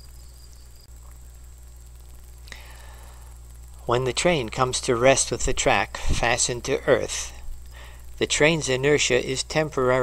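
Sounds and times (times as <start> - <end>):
faint hiss: 0.0 - 10.0
low electrical hum: 0.0 - 10.0
thin high steady tone: 0.0 - 10.0.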